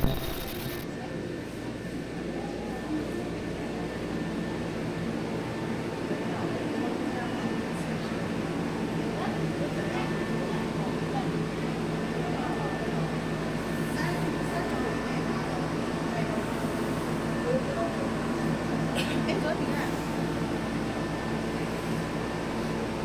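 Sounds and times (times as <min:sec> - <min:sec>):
machine hum: 0:00.0 - 0:00.8.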